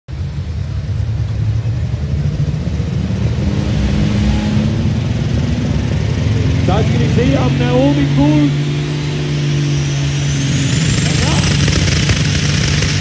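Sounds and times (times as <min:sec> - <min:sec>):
tractor diesel engine revving: 0:00.4 - 0:13.0.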